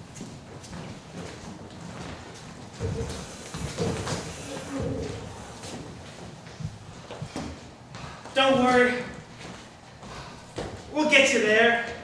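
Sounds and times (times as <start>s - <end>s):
footsteps on stage floor: 0.0s - 11.0s.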